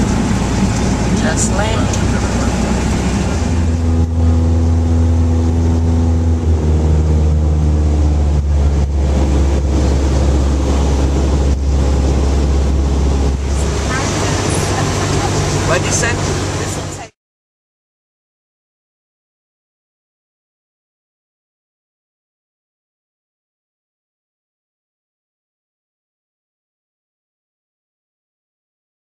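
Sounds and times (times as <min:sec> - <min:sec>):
airplane engine droning: 0:00.0 - 0:17.2.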